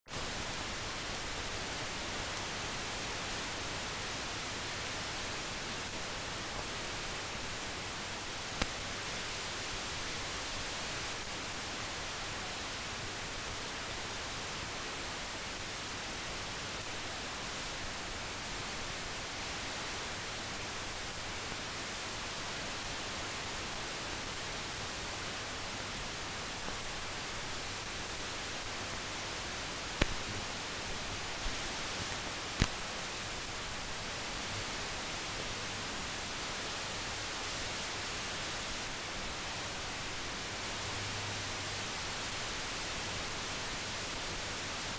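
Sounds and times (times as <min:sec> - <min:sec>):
film soundtrack hiss: 0:00.1 - 0:44.9.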